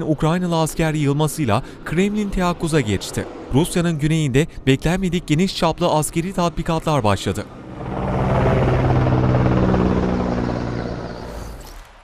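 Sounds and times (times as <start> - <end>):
armored vehicle engines driving past: 1.5 - 12.0.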